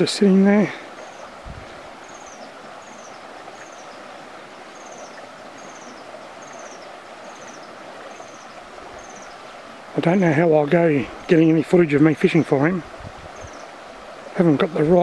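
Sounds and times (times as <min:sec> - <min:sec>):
running water hiss: 0:00.0 - 0:15.0.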